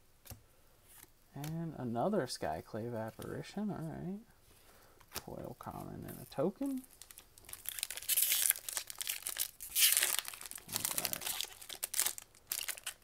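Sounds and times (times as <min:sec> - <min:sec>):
foil wrapper crinkling: 0:06.2 - 0:13.0.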